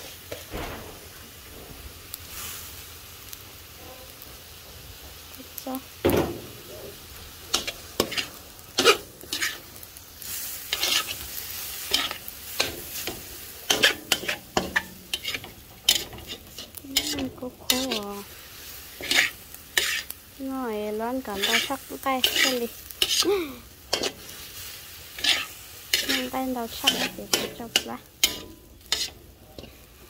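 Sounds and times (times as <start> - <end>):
noodles and meat sizzling: 0.0 - 30.0
metal spatula scraping a wok: 6.6 - 30.0.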